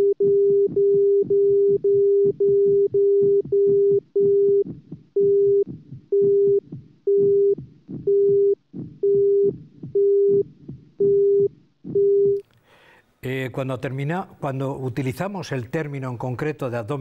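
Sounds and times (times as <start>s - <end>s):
heart monitor beeping: 0.0s - 12.4s.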